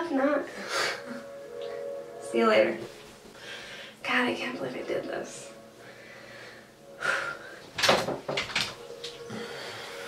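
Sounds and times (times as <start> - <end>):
breathy sound: 3.3 - 4.0, 5.8 - 7.7.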